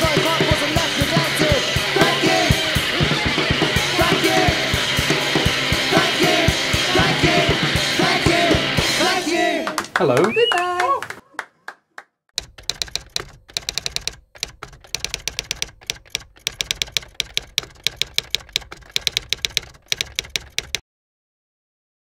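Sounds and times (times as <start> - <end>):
typewriter keys clacking: 12.4 - 20.8.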